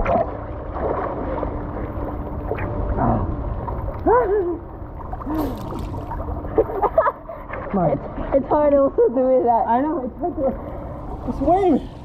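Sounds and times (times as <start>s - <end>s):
pool water sloshing: 0.0s - 12.0s
water splash: 4.9s - 7.7s.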